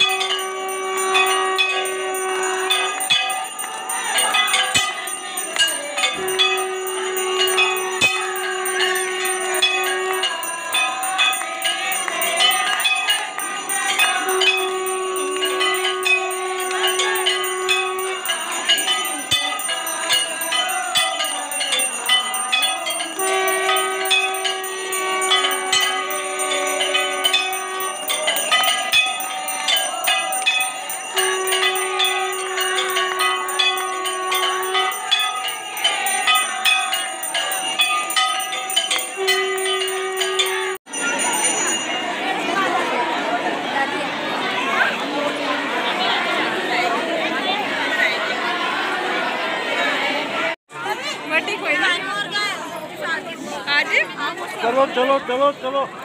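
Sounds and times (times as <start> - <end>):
long held note: 0.0 - 3.1, 6.2 - 11.0, 14.1 - 18.7, 21.8 - 35.6
temple bells ringing fast: 0.0 - 56.0.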